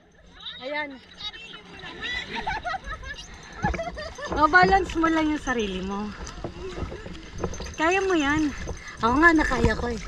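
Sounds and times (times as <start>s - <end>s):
water and wind rumble: 0.0s - 10.0s.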